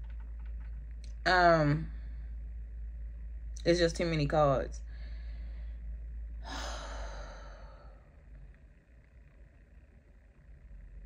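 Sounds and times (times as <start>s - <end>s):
faint low hum: 0.0s - 11.0s
woman sighing: 6.4s - 8.0s.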